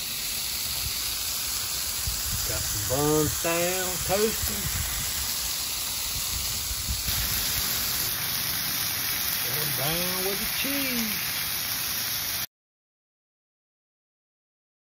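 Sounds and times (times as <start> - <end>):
burgers sizzling on a griddle: 0.0 - 12.5.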